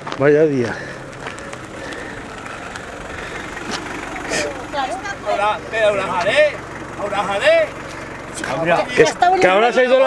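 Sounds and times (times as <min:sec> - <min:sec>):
car engine running at low revs: 0:00.0 - 0:10.0.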